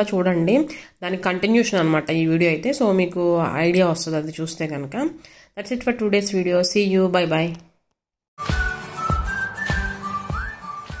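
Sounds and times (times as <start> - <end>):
whistled melody: 8.4 - 11.0.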